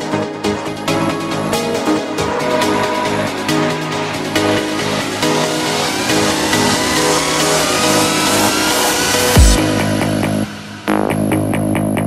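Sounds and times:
synth riser climbing in pitch: 0.0s - 11.3s
psytrance music: 0.0s - 12.0s.

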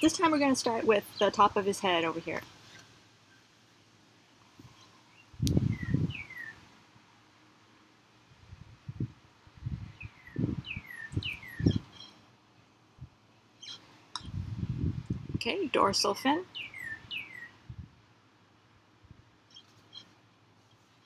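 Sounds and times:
bird chirping: 4.7s - 6.6s, 10.0s - 12.3s, 13.6s - 14.4s, 16.5s - 17.6s, 19.4s - 21.0s.

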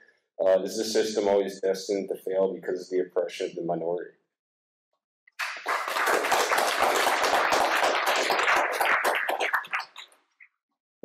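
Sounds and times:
audience applauding: 5.4s - 10.2s.

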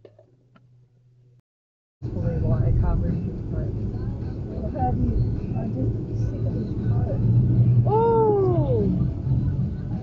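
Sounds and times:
engine and road noise drone: 2.0s - 10.0s.

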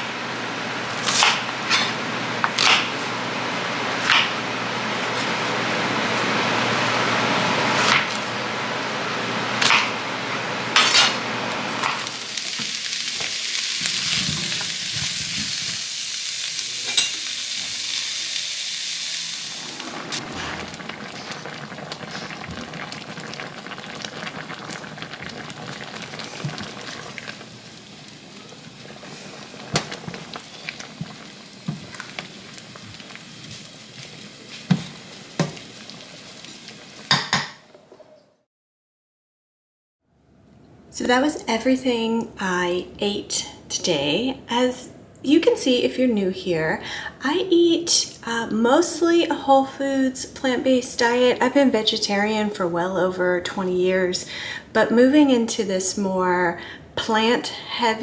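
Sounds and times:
food sizzling in frying pan: 9.6s - 37.5s.

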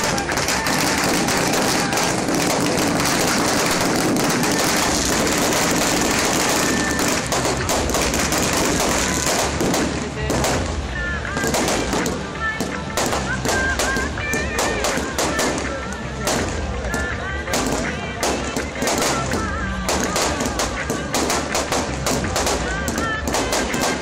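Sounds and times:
crowd voices: 0.0s - 24.0s
firework shells cracking and banging: 0.0s - 24.0s
spark fountains hissing: 0.0s - 24.0s.

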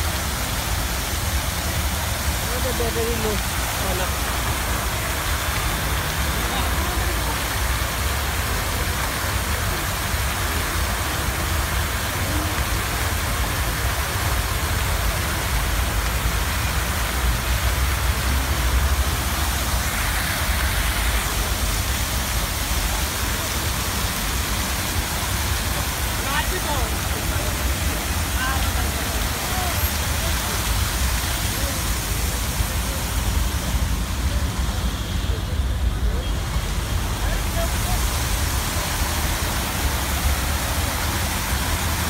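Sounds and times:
fountain spraying water: 0.0s - 42.0s.

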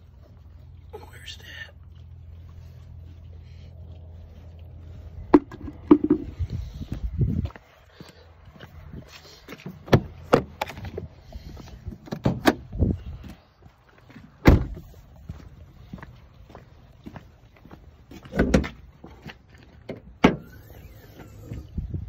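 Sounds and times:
low steady hum: 0.0s - 9.2s
knocks and clunks in truck cab: 12.0s - 12.7s, 14.4s - 14.9s, 18.3s - 18.8s.

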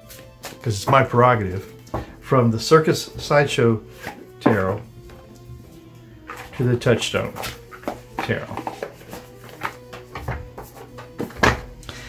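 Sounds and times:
faint background music: 0.0s - 12.0s
cards tapping and scraping: 3.9s - 4.7s, 6.2s - 11.6s.

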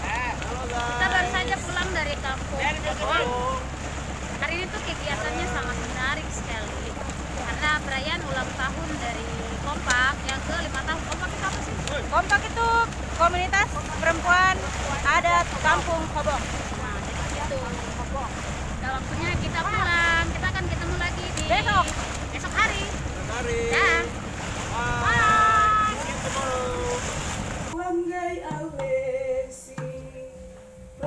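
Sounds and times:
wind buffeting microphone: 0.0s - 27.8s
boat motor drone: 0.0s - 30.3s
water rushing along hull: 0.0s - 31.0s.

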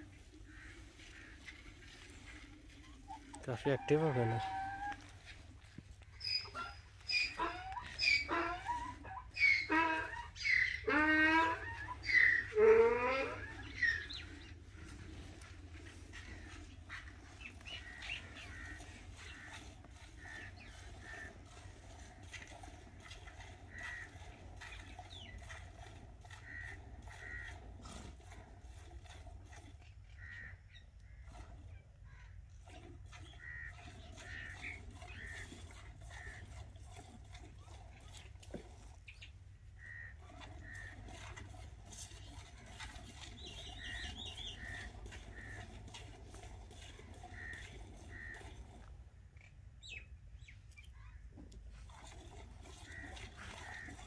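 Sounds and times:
loud animal calls: 6.2s - 28.0s, 42.2s - 46.0s, 46.7s - 48.6s.

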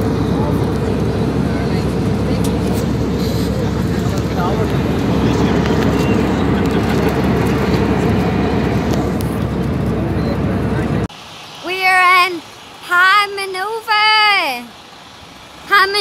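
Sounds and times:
airliner cabin noise in flight: 0.0s - 11.1s.

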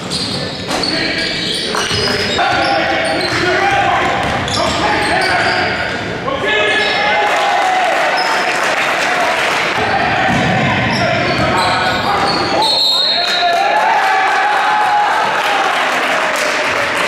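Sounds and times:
sneakers squeaking: 0.0s - 7.2s, 9.8s - 13.5s.

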